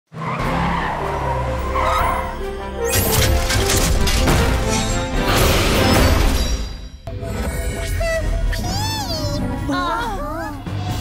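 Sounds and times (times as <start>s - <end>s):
tyres skidding: 0.1s - 5.3s.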